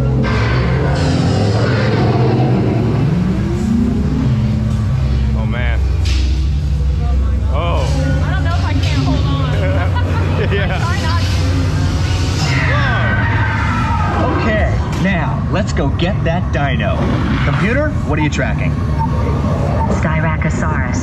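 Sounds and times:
deep steady rumble: 0:00.0 - 0:21.0
rising tone: 0:00.0 - 0:21.0
warbling electronic sounds: 0:00.0 - 0:21.0.

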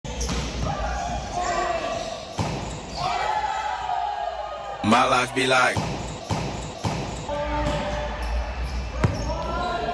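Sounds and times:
volleyball hits echoing: 0:02.3 - 0:03.0, 0:05.6 - 0:07.9.

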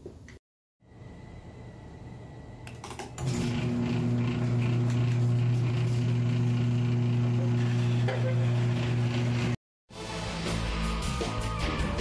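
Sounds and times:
garage door motor hum and rattle: 0:02.7 - 0:09.6.

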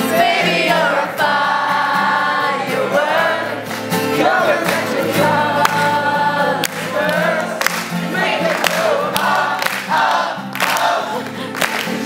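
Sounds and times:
acoustic guitars strummed: 0:00.0 - 0:12.0
group of young voices singing: 0:00.0 - 0:12.0.

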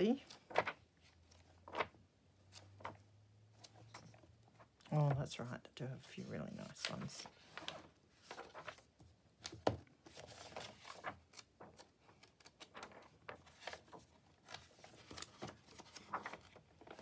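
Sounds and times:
book pages turning: 0:00.2 - 0:05.4, 0:06.1 - 0:17.0.

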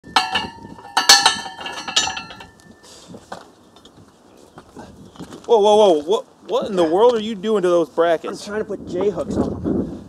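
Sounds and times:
metal clinks of rebar bender: 0:00.0 - 0:02.9.

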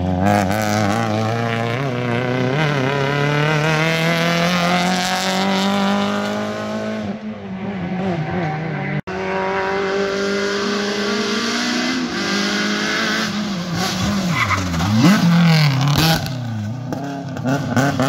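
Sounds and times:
rally car engine revving: 0:00.0 - 0:18.0.

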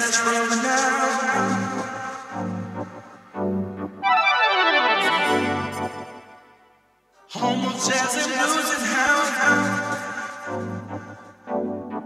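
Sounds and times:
organ-like keyboard chords: 0:01.4 - 0:06.7
repeating bass notes: 0:02.5 - 0:06.3
falling pitch sweep: 0:04.0 - 0:06.5.

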